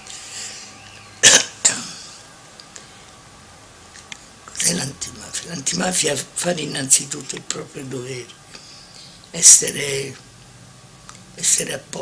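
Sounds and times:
elderly woman coughing: 0:01.2 - 0:02.2.

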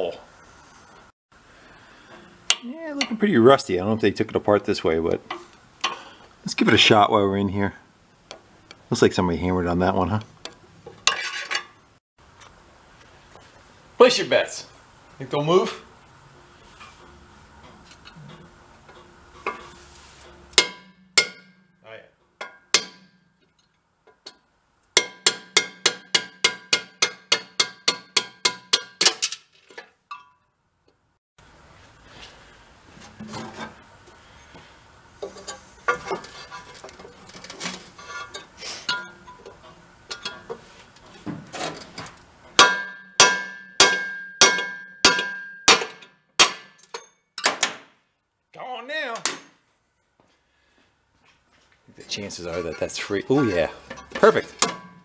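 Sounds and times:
hammer striking steel: 0:20.3 - 0:21.8, 0:22.4 - 0:23.3, 0:25.0 - 0:29.3, 0:42.6 - 0:47.8, 0:53.9 - 0:55.0.

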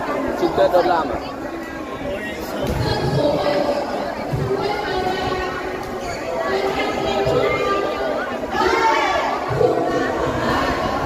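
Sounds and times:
indistinct chatter in a hall: 0:00.0 - 0:11.0.

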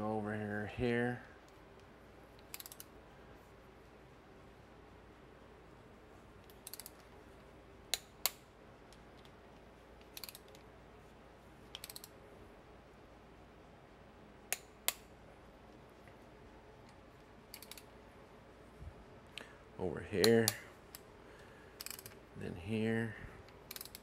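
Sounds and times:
ratchet clicking: 0:02.4 - 0:02.9, 0:06.4 - 0:07.1, 0:10.0 - 0:10.6, 0:11.7 - 0:12.2, 0:17.5 - 0:17.9, 0:21.8 - 0:22.2, 0:23.6 - 0:24.0
torque wrench clicks: 0:02.4 - 0:02.9, 0:06.4 - 0:07.0, 0:10.0 - 0:10.6, 0:11.7 - 0:12.2, 0:17.5 - 0:17.9, 0:21.8 - 0:22.2, 0:23.7 - 0:24.0.

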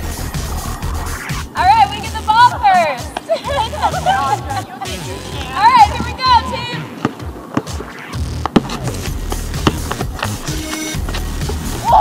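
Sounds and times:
background music with beat: 0:00.0 - 0:12.0
basketball bouncing on asphalt: 0:05.8 - 0:12.0.

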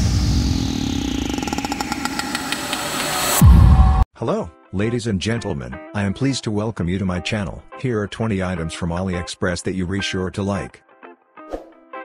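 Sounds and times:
buzzing electronic riser: 0:00.0 - 0:03.6.

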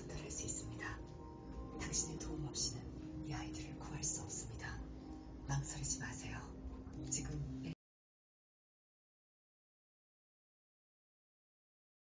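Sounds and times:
faint background music: 0:00.0 - 0:07.8.

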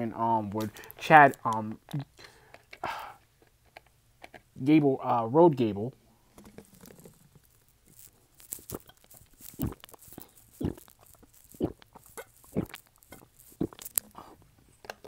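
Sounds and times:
person chewing crunchy food: 0:06.4 - 0:15.0.

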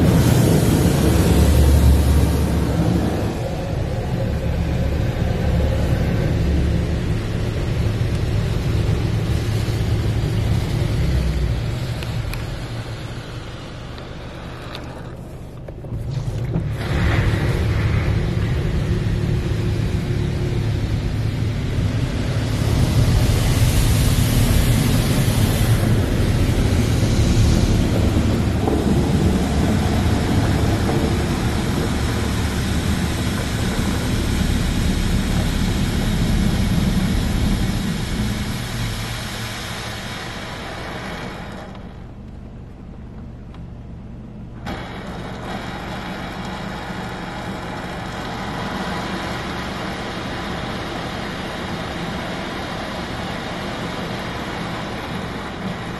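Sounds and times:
car wash water spraying: 0:00.0 - 0:55.9
low machine rumble: 0:00.0 - 0:55.9.

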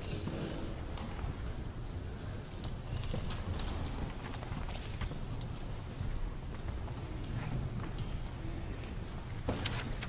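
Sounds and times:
low rumble of large hall: 0:00.0 - 0:10.0.

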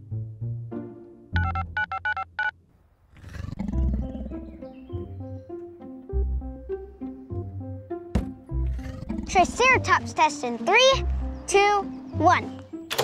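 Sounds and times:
keypad beeps: 0:01.4 - 0:02.5.

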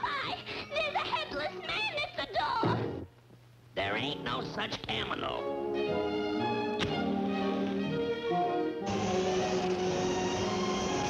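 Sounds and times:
held orchestral notes: 0:05.4 - 0:11.0.

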